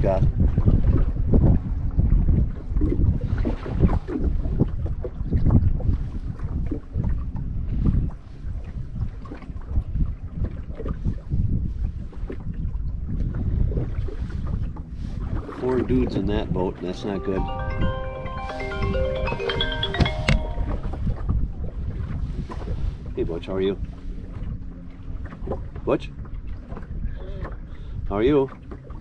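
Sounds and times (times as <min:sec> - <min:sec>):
wind buffeting microphone: 0:00.0 - 0:17.2, 0:20.9 - 0:29.0.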